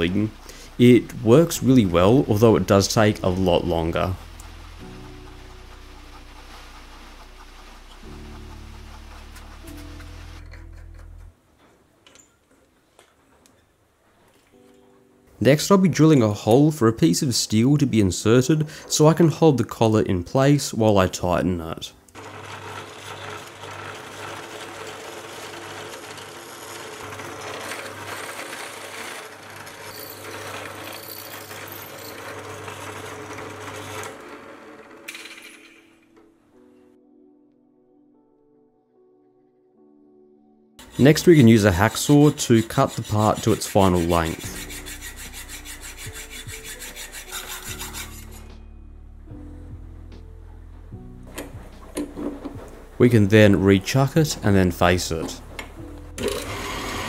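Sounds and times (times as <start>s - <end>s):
quiet background music: 0.0s - 57.0s
milling machine motor humming: 3.3s - 10.5s, 22.1s - 35.1s, 55.4s - 57.0s
drill bit boring into metal: 22.2s - 34.9s, 56.2s - 57.0s.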